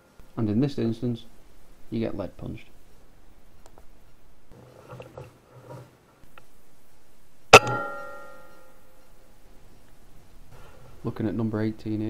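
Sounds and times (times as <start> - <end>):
ringing tone: 7.5 - 8.9.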